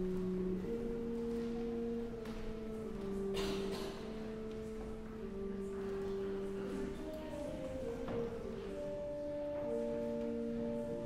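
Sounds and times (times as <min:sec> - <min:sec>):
church organ sustained notes: 0:00.0 - 0:11.0.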